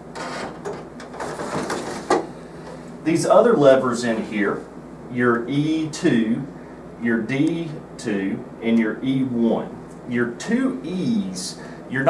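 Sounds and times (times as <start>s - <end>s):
plastic container scraping on rails: 1.1s - 2.3s.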